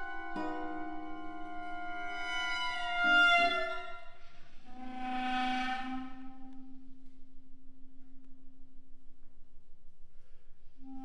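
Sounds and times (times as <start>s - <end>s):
low sustained note: 0.0s - 11.0s.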